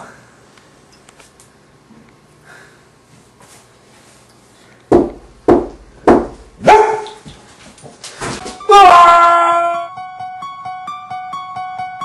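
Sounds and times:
loud held cry: 8.7 - 9.9
light repeating keyboard tune: 9.9 - 12.0.

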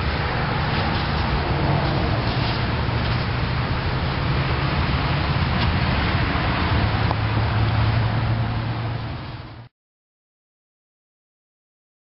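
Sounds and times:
steady rushing noise: 0.0 - 9.7.

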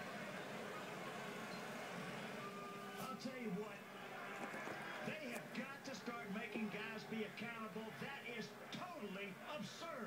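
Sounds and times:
baseball telecast on tv: 0.0 - 10.0.

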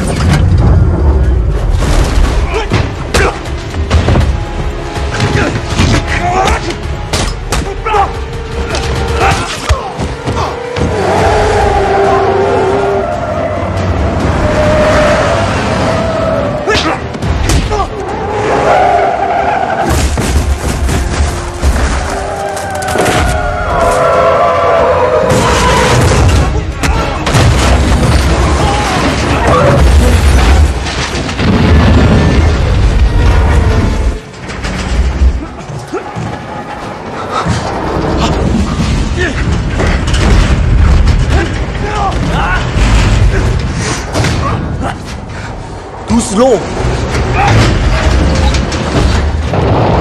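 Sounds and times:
film music: 0.0 - 50.0
mechanical clanks and rattles: 25.3 - 50.0.

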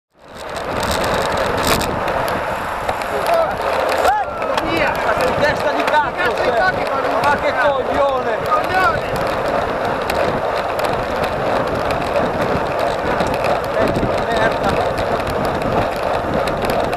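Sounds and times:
tyre noise: 0.1 - 16.9
wind rush: 0.1 - 16.9
riders calling out: 1.1 - 16.8.

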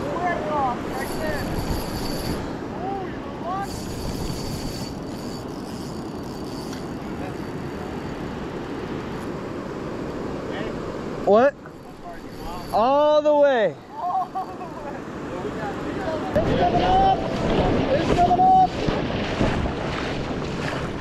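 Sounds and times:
river water rushing: 4.9 - 21.0.

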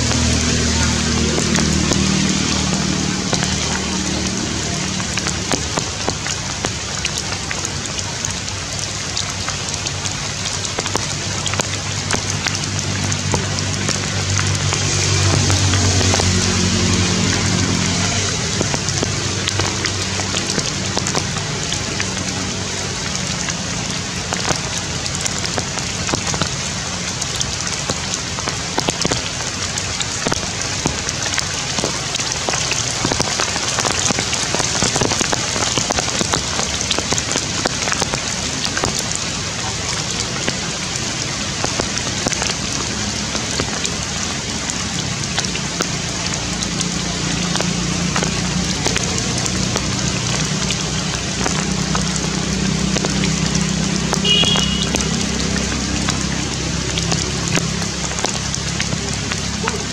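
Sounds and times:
rain pattering on foliage: 0.0 - 59.9.

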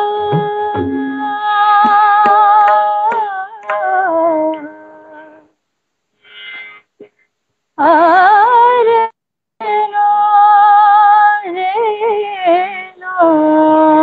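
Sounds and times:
woman singing classical vocals: 7.8 - 14.0.

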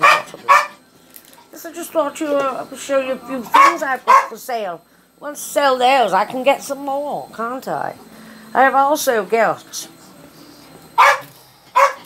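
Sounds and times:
dog barking: 0.0 - 0.8, 3.5 - 4.4, 11.0 - 12.0.

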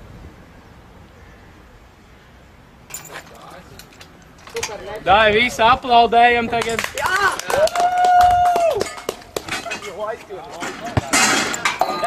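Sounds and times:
voices: 2.9 - 12.0.

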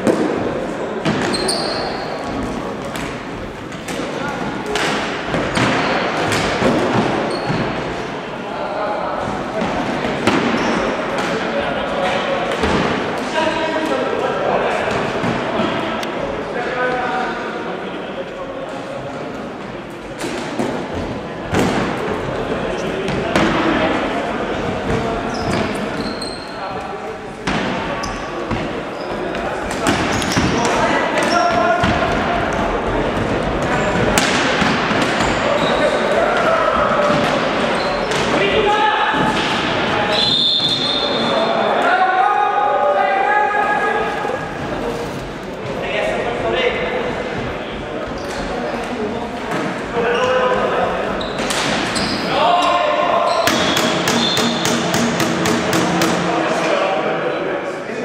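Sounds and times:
sticks and ball knocking on floor: 53.5 - 56.3.

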